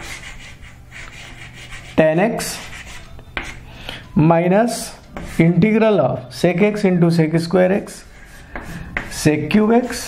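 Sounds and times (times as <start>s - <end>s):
chalk scratching on blackboard: 0.0s - 3.7s, 5.2s - 5.7s, 7.8s - 10.0s.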